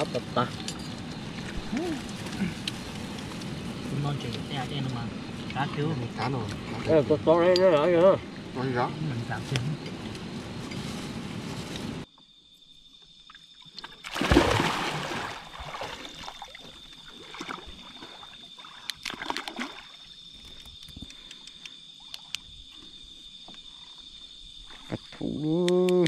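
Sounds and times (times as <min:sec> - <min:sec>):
night insects droning: 0:00.0 - 0:26.0
water splashing around boat: 0:13.8 - 0:20.1
sharp clicks: 0:20.7 - 0:22.5.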